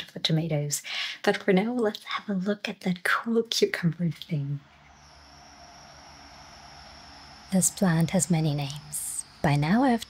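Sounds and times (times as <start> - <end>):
thin high-pitched whine: 3.8 - 10.0.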